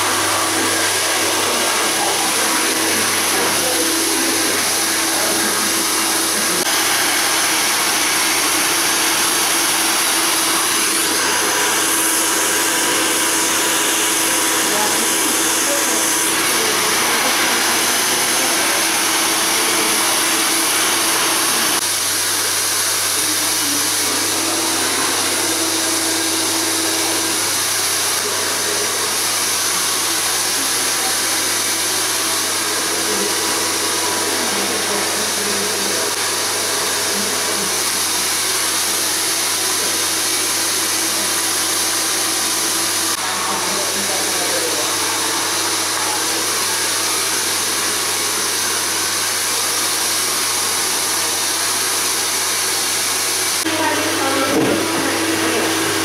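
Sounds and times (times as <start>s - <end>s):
hair dryer running: 0.0s - 56.0s.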